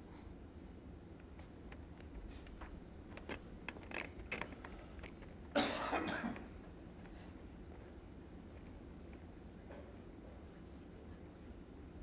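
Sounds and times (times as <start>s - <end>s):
person coughing: 5.5s - 6.4s.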